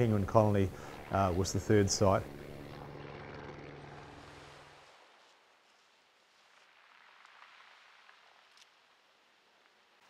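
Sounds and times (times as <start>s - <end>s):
helicopter engine and rotor: 0.0s - 4.8s.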